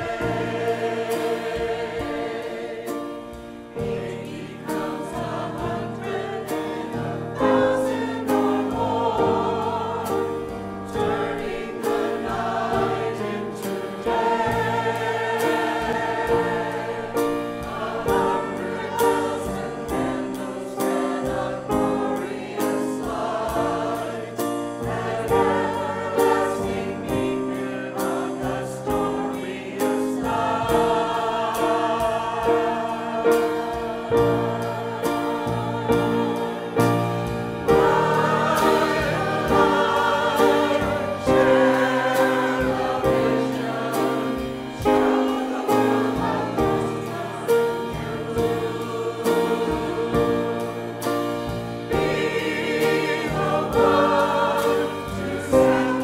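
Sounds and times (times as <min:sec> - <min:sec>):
choir singing in harmony: 0:00.0 - 0:56.0.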